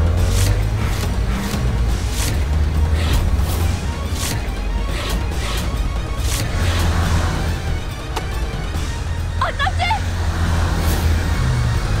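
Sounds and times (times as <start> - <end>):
background music: 0.0 - 12.0
car engine rumbling: 0.0 - 12.0.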